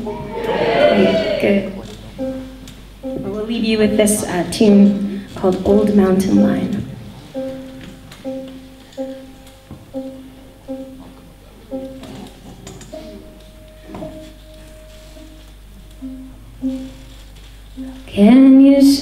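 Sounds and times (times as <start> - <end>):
plucked string notes: 0.0 - 19.0.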